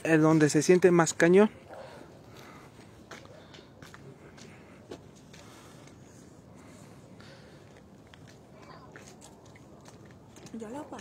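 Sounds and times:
footsteps on paved path: 0.0s - 11.0s.

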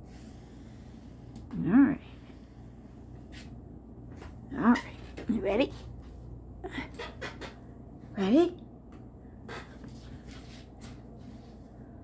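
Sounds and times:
cat paws scuffing laminate floor: 9.6s - 11.8s.

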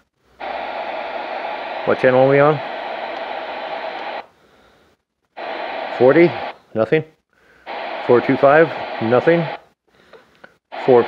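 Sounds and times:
radio static hiss: 0.0s - 4.4s, 5.2s - 9.8s, 10.6s - 11.0s.

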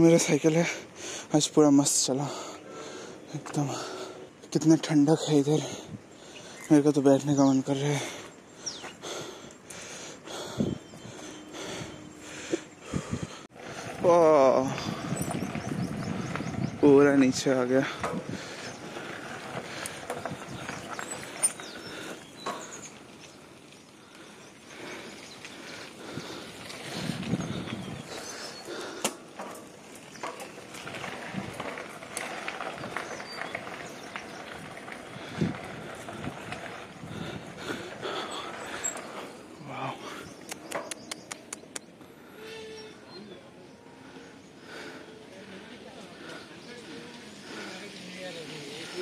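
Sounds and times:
quick clicks: 40.5s - 41.9s.

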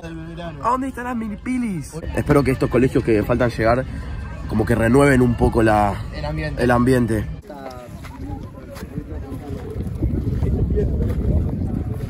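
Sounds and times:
people talking faintly: 7.2s - 12.0s
wind buffeting microphone: 7.4s - 12.0s.

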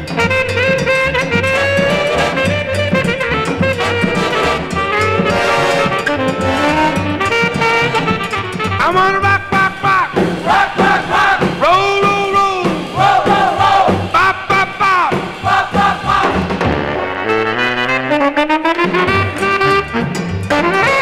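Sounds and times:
steady beat: 0.0s - 16.8s
big-band horns playing: 0.0s - 21.0s.

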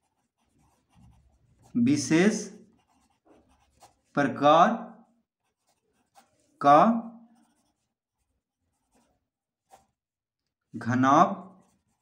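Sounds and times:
pencil scratching on paper: 0.0s - 10.2s, 11.4s - 12.0s.

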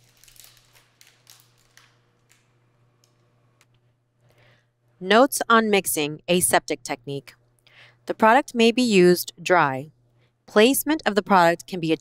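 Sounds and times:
plastic pouch crinkling: 0.0s - 2.5s.

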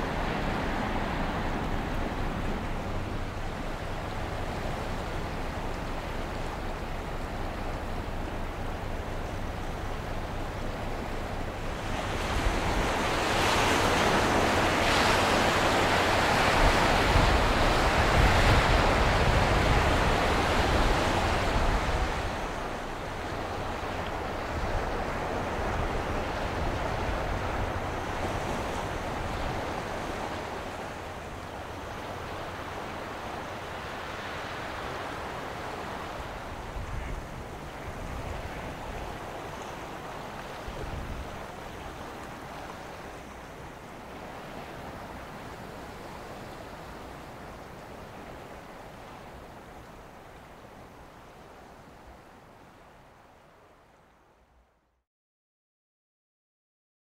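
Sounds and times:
wind rumbling on microphone: 0.0s - 52.8s
waves washing against shore: 0.0s - 54.0s.

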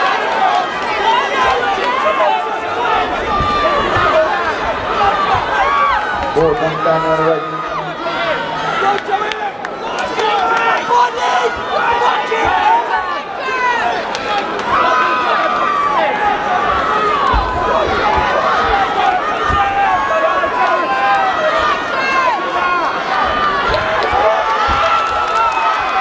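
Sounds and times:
crowd shouting and cheering: 0.0s - 26.0s
low thuds: 17.2s - 20.0s.

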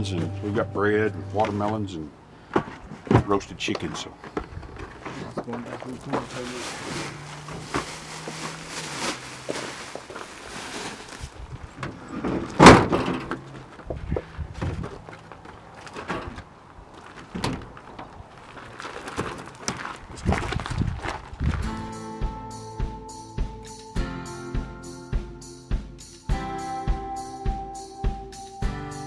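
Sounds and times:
boxes knocking and rustling: 1.4s - 21.4s.

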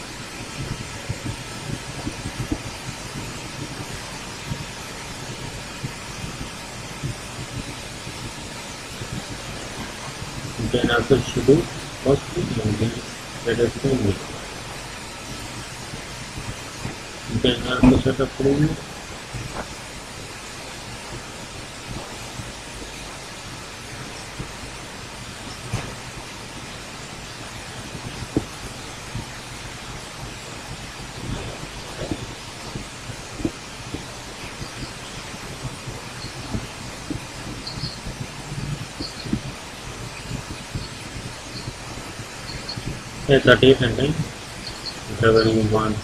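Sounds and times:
microphone hiss and hum: 0.0s - 46.0s.

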